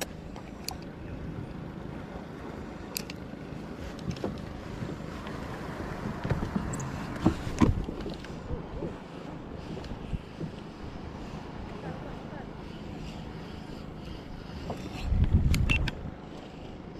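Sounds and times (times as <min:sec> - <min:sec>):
light clicks: 0:00.0 - 0:00.9, 0:02.8 - 0:03.2, 0:14.8 - 0:16.0
wind and water noise: 0:00.0 - 0:16.9
knocks and thumps of gear: 0:06.0 - 0:08.3.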